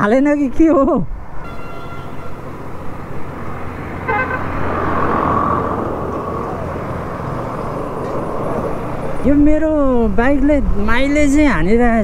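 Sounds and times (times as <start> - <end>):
vehicle horn toot: 1.4 - 2.5, 4.0 - 4.5
large vehicle passing: 2.0 - 11.0
low engine hum: 2.4 - 10.9.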